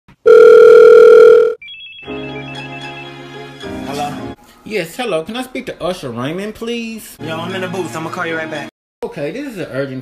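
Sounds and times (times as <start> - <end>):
electronic telephone ring tone: 0.2 - 2.1
slow music with held notes: 1.6 - 4.7.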